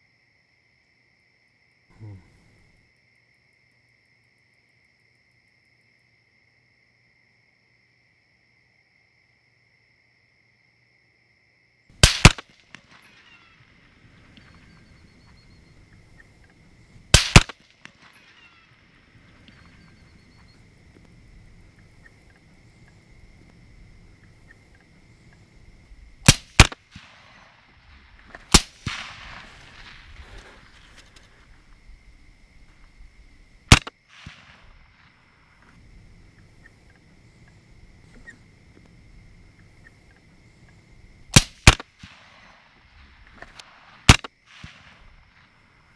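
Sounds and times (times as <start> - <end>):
crickets chirring: 0.0 - 45.9
rifle shots: 12.0 - 15.6, 17.1 - 20.6, 26.2 - 30.8, 33.7 - 35.0, 41.3 - 42.7, 43.4 - 45.0.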